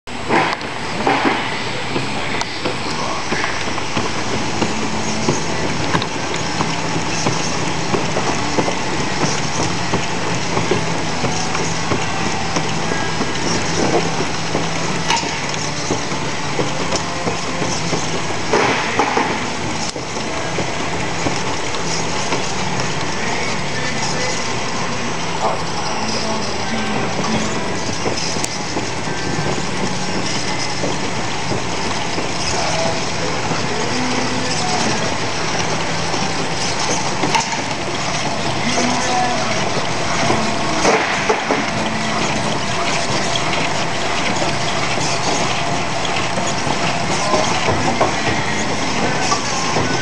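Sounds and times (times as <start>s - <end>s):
machine belts and rollers running: 0.1s - 50.0s.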